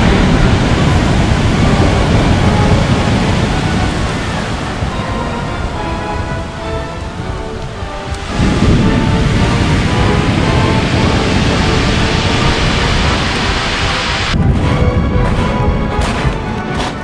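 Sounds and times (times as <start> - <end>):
surf breaking on pebble beach: 0.0 - 5.0, 8.0 - 14.6
faint steady tones: 0.0 - 14.4.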